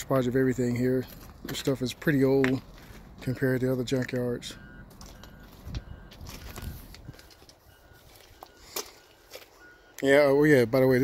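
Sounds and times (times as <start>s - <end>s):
footsteps on gravel: 1.0s - 4.3s, 4.9s - 9.6s.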